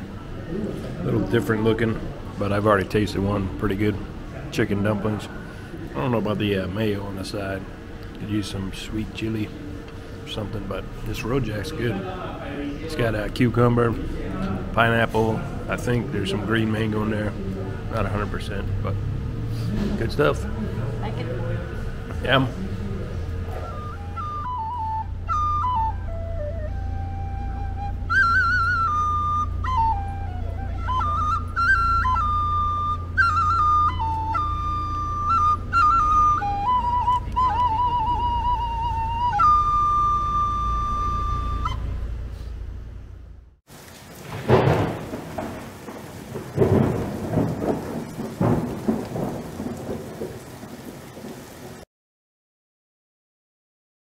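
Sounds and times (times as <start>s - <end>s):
steady low hum: 0.0s - 24.0s, 40.5s - 43.6s
steady rain: 0.0s - 41.8s, 43.7s - 51.9s
low street rumble: 0.0s - 51.8s
solo flute melody: 23.3s - 42.5s
rolling thunder: 43.7s - 51.8s.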